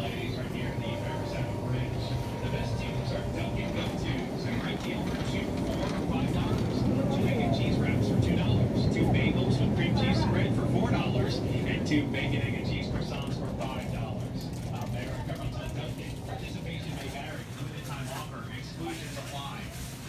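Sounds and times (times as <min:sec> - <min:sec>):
indistinct voices: 0:00.0 - 0:18.8
refrigerator hum: 0:00.0 - 0:20.0.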